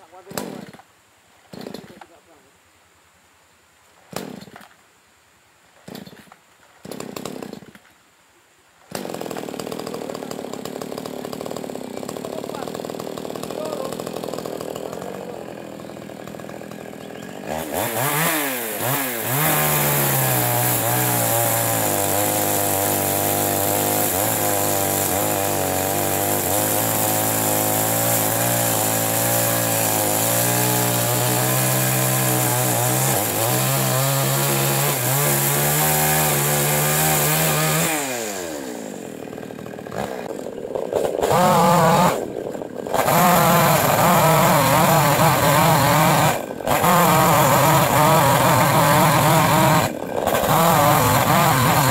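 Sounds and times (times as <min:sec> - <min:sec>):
chainsaw cutting wood: 0:00.0 - 0:02.2, 0:04.0 - 0:04.8, 0:05.8 - 0:08.0, 0:08.8 - 0:51.9
chainsaw idling: 0:01.5 - 0:02.2, 0:06.8 - 0:07.8, 0:08.9 - 0:51.9.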